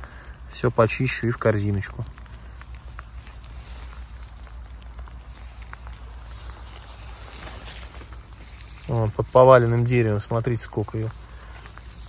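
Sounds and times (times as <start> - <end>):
low steady rumble: 0.0 - 12.0
rustling of dry pine needles: 0.0 - 12.0.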